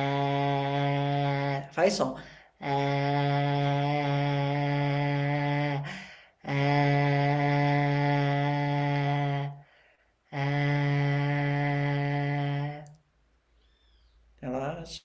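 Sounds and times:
man sustaining low vowel: 0.0 - 13.0
short breaths: 2.2 - 2.6, 5.8 - 6.6, 9.5 - 10.4.

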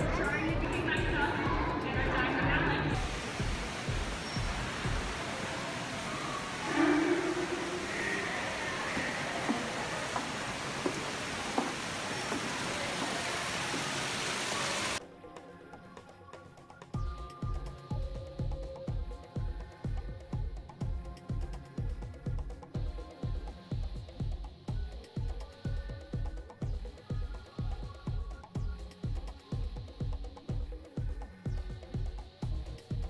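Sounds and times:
faint voices in a large hall: 0.0 - 3.6, 4.8 - 11.4
loud rushing water: 2.4 - 15.0.

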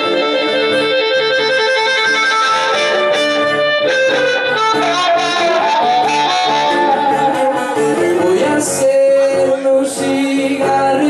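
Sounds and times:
blues harmonica: 0.0 - 8.8
strummed acoustic guitar: 0.0 - 11.0.

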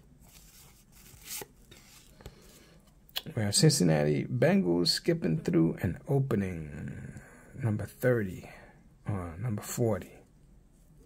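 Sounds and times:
card sliding swish: 0.3 - 2.1.

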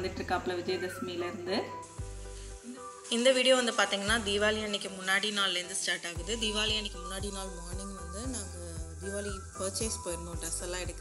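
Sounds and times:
steady hiss: 1.7 - 6.2
woman's voice: 2.7 - 11.0.

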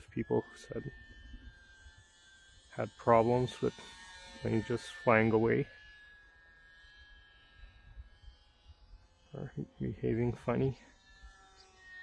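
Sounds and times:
man talking: 0.0 - 0.9, 2.8 - 3.7, 4.5 - 5.7, 9.4 - 10.8
model plane motor whine: 0.0 - 12.0.

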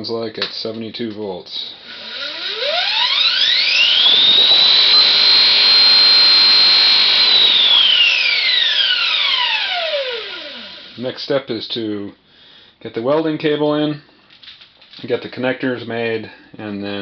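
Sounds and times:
electric motor whine: 1.8 - 11.0.

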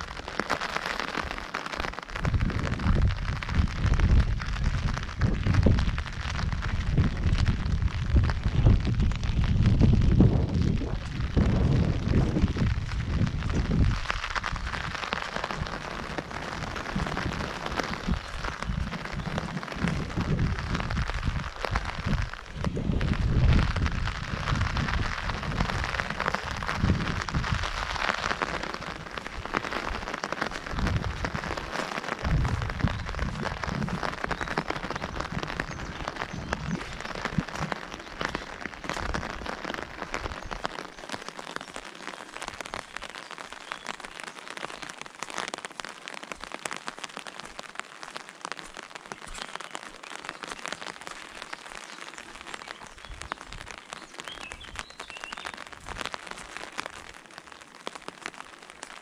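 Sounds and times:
rain on fabric umbrella: 0.0 - 59.0.

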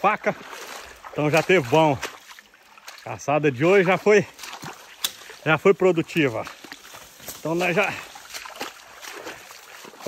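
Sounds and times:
creek water trickling: 0.0 - 10.0.

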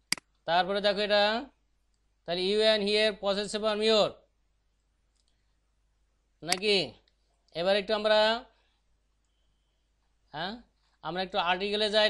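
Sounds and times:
sharp click: 0.0 - 0.4
person speaking: 0.0 - 1.6, 2.2 - 4.3, 6.4 - 8.6, 10.3 - 12.0.

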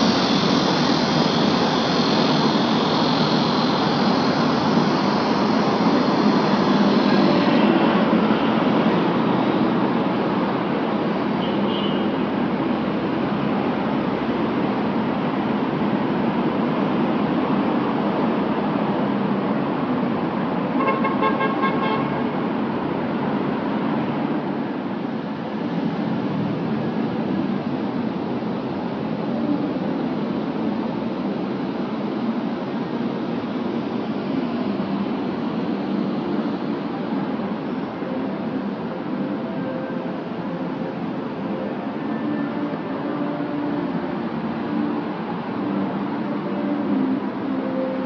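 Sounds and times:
city traffic noise: 0.0 - 48.0
car horn: 11.4 - 12.1, 20.8 - 22.4.

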